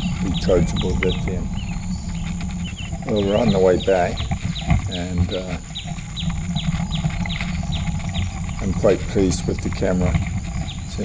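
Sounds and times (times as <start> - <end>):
electric wheelchair rolling on bricks: 0.0 - 11.0.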